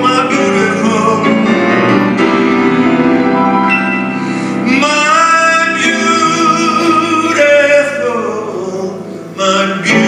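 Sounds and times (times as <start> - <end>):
person singing: 0.0 - 1.8, 4.4 - 10.0
piano chords: 0.0 - 10.0.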